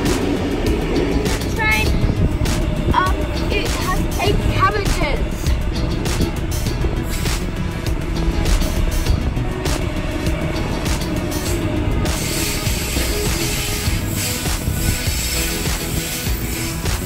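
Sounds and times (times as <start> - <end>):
background music: 0.0 - 17.0
electric train rumbling: 0.0 - 17.0.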